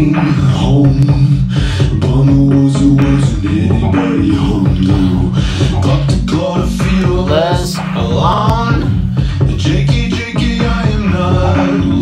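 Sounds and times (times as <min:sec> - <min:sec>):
song with steady beat: 0:00.0 - 0:12.0
sustained bass notes: 0:00.0 - 0:12.0.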